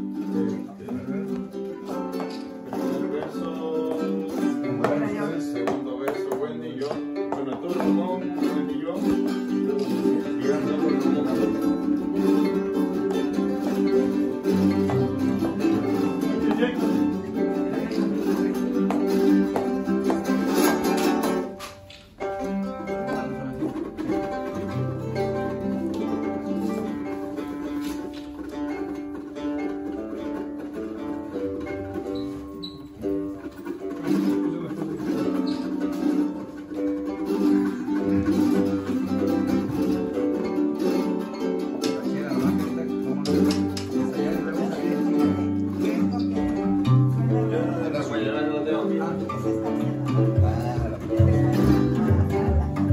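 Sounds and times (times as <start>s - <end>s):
plucked guitar: 0.0s - 52.9s
strummed small guitars: 0.0s - 52.9s.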